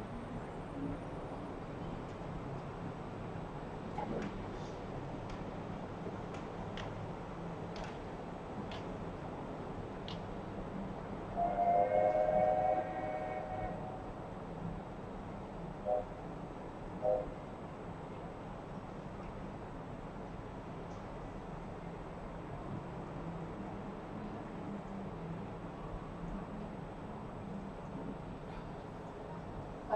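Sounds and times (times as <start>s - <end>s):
train horn chord: 11.4s - 14.0s.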